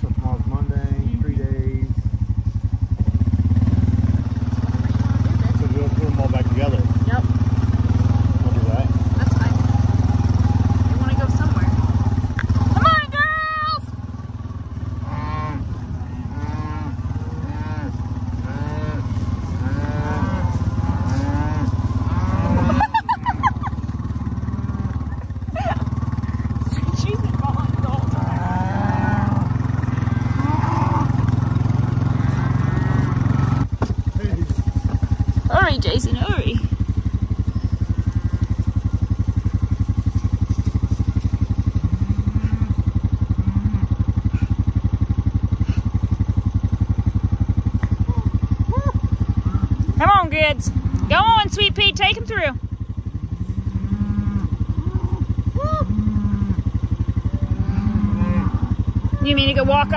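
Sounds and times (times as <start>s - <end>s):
vehicle engine hum: 0.0s - 59.9s
cattle mooing: 4.6s - 47.1s, 48.1s - 59.9s.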